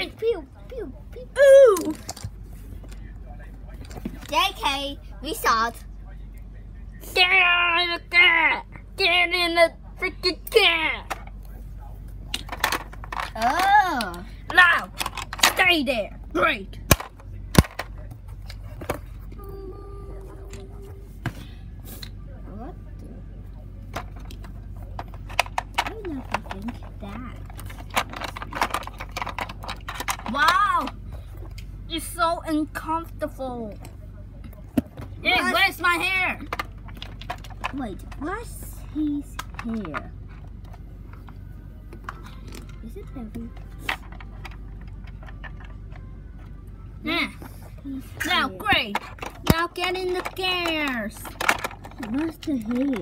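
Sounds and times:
steady low hum: 0.0s - 53.0s
faint voice murmuring: 19.2s - 21.2s.

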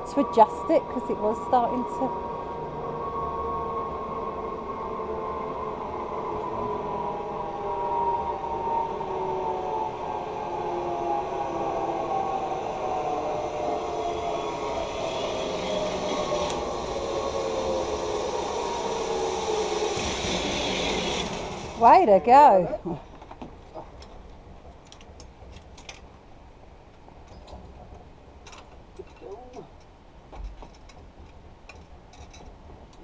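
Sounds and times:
zipline pulleys whining on cable: 0.0s - 22.6s
rising hiss: 12.6s - 21.8s.

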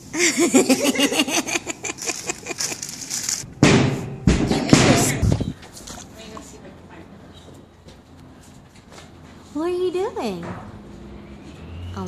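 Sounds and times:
woman laughing: 0.0s - 3.1s.

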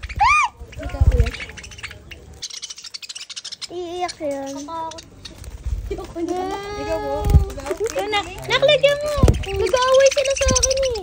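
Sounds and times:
budgerigars chirping: 0.0s - 5.6s, 8.0s - 11.0s.

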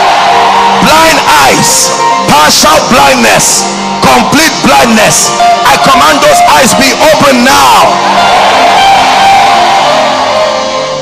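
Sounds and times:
band playing held chords: 0.0s - 11.0s.

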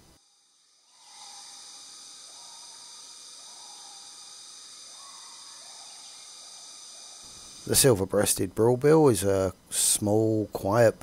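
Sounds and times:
insects buzzing: 0.0s - 11.0s.

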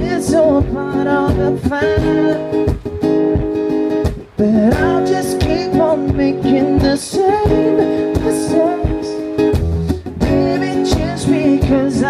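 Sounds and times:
acoustic guitar strummed slowly: 0.0s - 12.0s
man singing wordless note: 4.4s - 9.2s, 10.2s - 12.0s.

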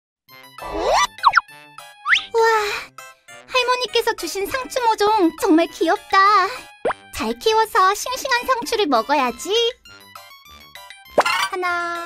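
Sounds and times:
cartoon music: 0.6s - 2.6s.

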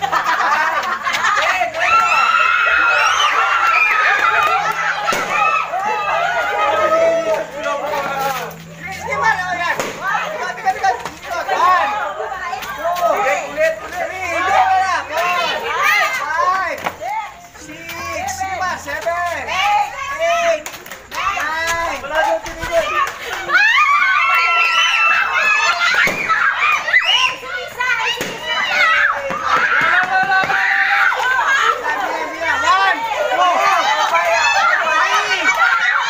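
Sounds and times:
children shouting and squealing: 0.0s - 36.0s
people talking and calling out: 0.0s - 36.0s.

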